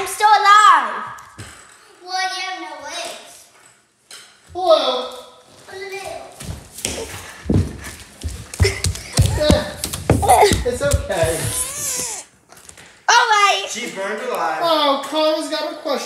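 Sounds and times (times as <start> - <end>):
child calling out: 11.3 - 12.2.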